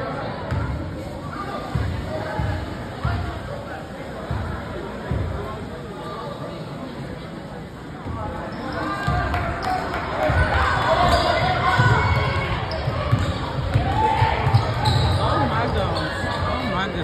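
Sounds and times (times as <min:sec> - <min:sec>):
basketball bouncing: 0:11.1 - 0:15.2.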